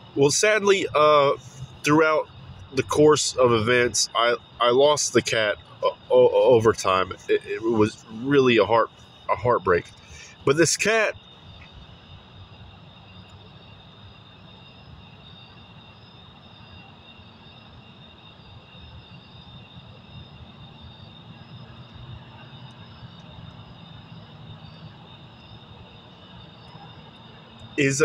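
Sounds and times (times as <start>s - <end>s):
steady low rumble: 0.0s - 16.8s
crickets chirring: 0.0s - 28.0s.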